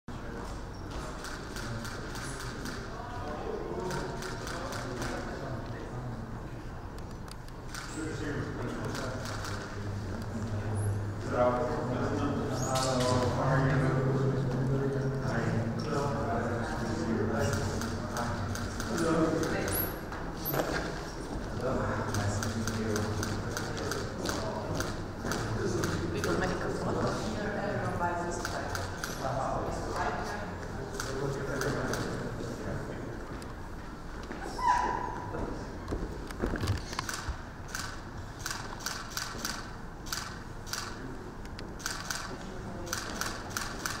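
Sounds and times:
camera shutters clicking: 7.0s - 8.0s, 17.4s - 19.9s, 22.1s - 26.6s, 36.3s - 44.0s.

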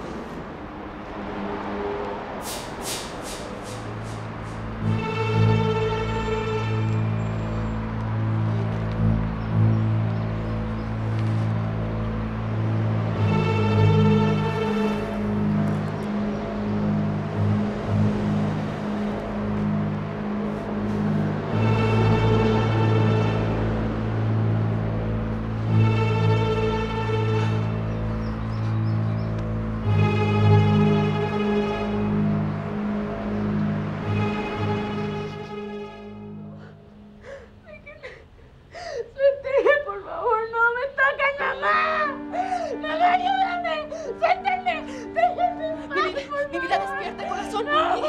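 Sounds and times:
street traffic rushing: 0.0s - 48.0s
dramatic background music: 3.7s - 37.3s.

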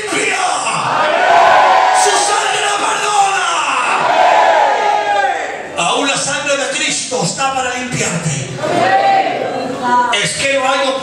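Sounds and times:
man shouting into a microphone: 0.0s - 1.1s, 1.9s - 4.1s.

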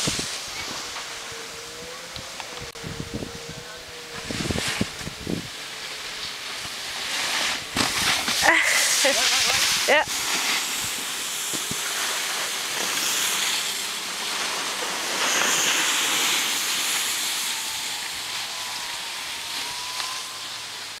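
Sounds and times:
wind on microphone: 0.0s - 5.6s
snowboards scraping over snow: 0.0s - 21.0s.

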